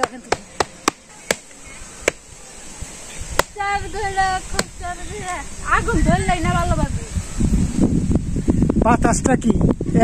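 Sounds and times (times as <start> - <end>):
stick striking bamboo fan: 0.0 - 2.2, 3.3 - 3.6.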